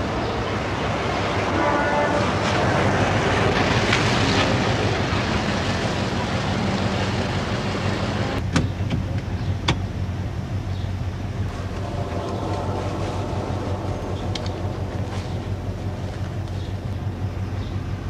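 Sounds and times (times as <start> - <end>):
van engine and road noise: 0.0 - 18.0.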